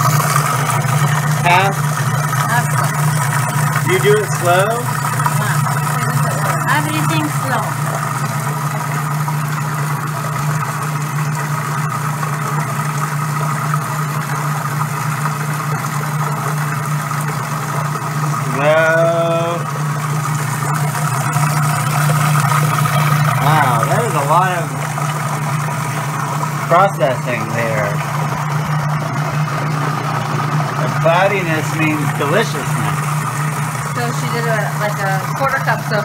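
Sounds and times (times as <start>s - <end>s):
food processor motor humming: 0.0s - 36.0s.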